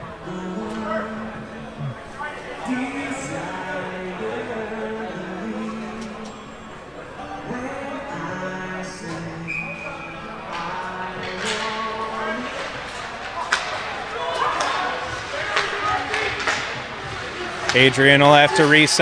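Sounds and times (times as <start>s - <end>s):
arena music with held notes: 0.0s - 19.0s
crowd chatter: 0.0s - 19.0s
hockey sticks clacking on puck: 10.5s - 19.0s.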